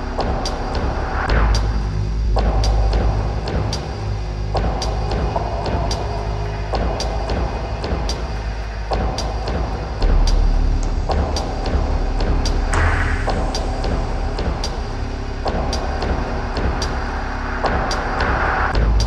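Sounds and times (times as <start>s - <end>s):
droning electronic music: 0.0s - 19.0s
sub-bass rumble: 0.0s - 19.0s.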